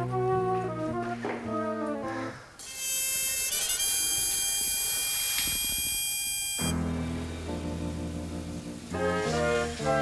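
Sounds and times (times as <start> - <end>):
low held notes: 6.6 - 9.1.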